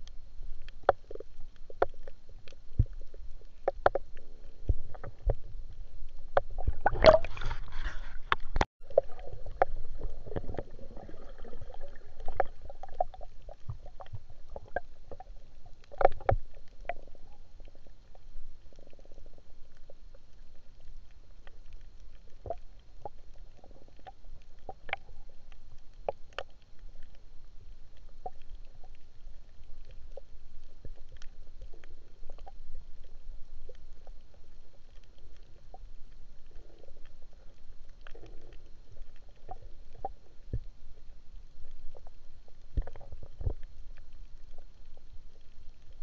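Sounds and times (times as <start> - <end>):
underwater clicks and crackles: 0.0 - 46.0
underwater low rumble: 0.0 - 46.0.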